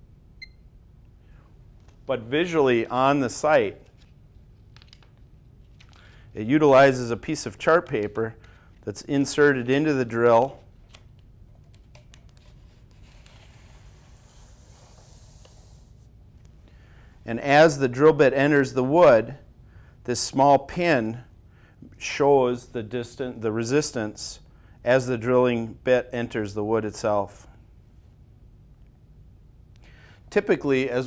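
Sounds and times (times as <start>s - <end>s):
paper rustling and rubbing: 11.9s - 16.0s.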